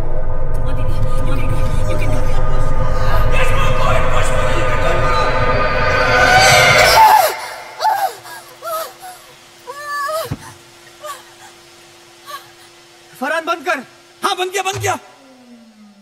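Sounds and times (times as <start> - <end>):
dramatic film music: 0.0 - 8.5
faint steady hum: 0.0 - 16.0
woman crying out and moaning: 6.6 - 12.8.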